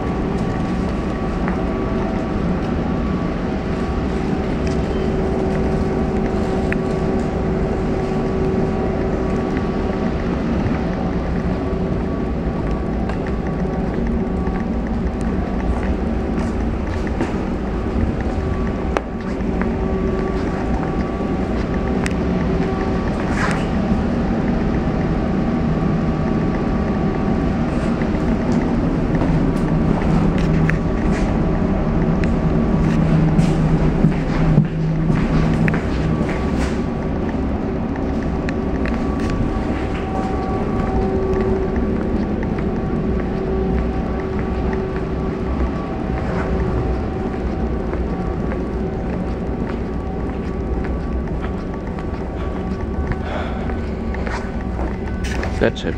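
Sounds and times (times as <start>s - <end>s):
metro train hum with tones: 0.0s - 55.9s.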